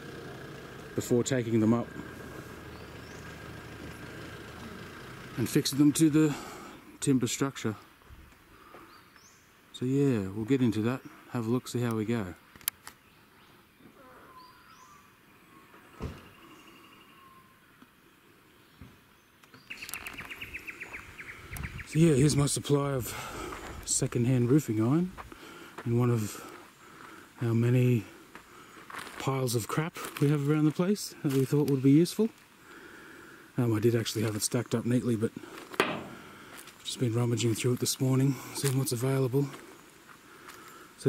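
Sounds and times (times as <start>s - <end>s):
low motor hum: 0.0s - 6.6s
bird calls: 1.5s - 7.0s, 12.4s - 23.4s
thump: 16.0s - 16.3s, 35.8s - 36.2s.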